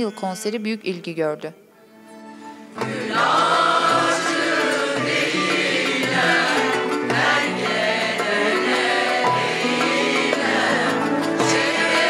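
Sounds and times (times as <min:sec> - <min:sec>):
small instrumental ensemble: 0:01.6 - 0:12.0
mixed choir singing: 0:02.7 - 0:12.0.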